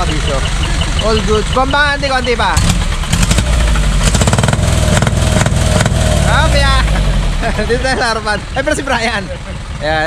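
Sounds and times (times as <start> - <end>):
truck engine revving: 0.0 - 10.0.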